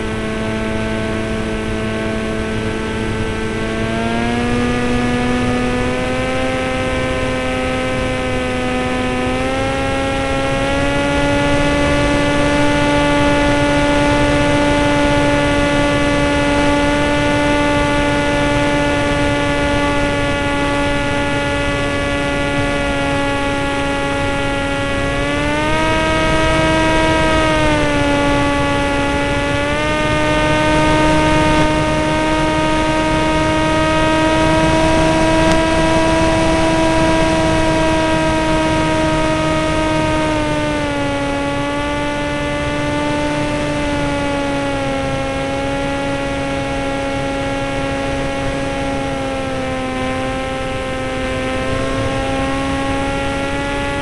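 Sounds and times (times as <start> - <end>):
model airplane motor buzzing: 0.0 - 54.0.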